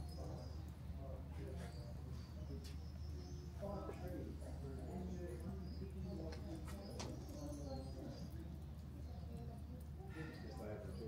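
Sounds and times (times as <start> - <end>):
faint conversation: 0.0 - 11.0.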